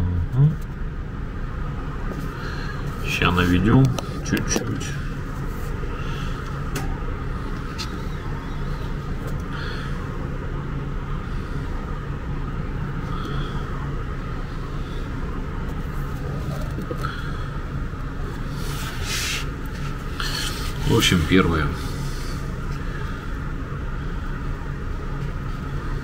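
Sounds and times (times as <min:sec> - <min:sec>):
low background hum: 0:00.0 - 0:26.0.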